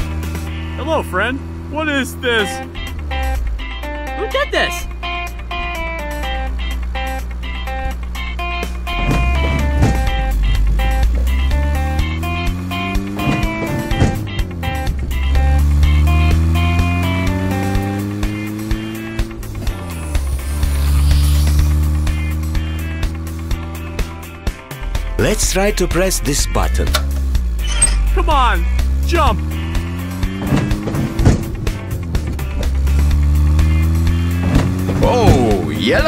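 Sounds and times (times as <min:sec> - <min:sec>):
background music: 0:00.0 - 0:36.0
cartoon engine revving: 0:15.2 - 0:23.1.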